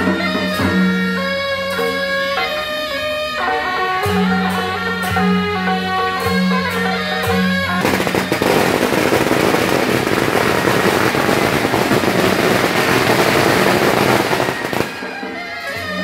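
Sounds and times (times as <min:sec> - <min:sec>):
traditional music: 0:00.0 - 0:16.0
firecrackers crackling: 0:07.8 - 0:16.0.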